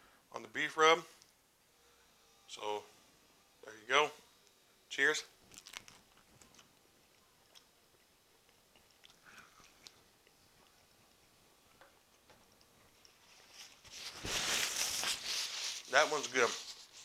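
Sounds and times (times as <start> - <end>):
quiet chewing: 5.4 - 13.8
faint mouth clicks: 8.5 - 10.8
paper napkin rustling: 13.2 - 17.0.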